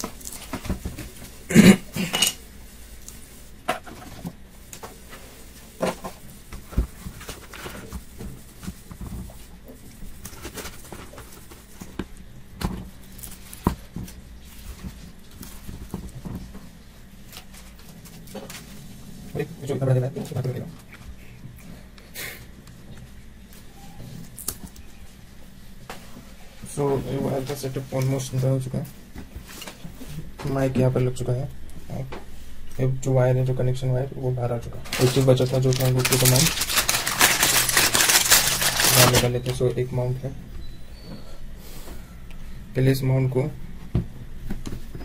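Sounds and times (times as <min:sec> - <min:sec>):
plastic bags crinkling: 0:00.0 - 0:01.4, 0:34.8 - 0:39.7
steady low hum: 0:00.0 - 0:45.0.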